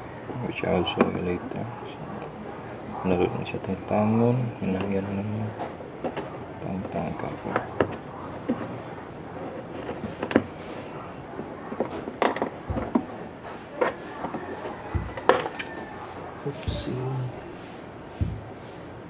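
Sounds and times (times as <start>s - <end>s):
dull thumps: 14.1s - 15.4s, 18.2s - 18.6s.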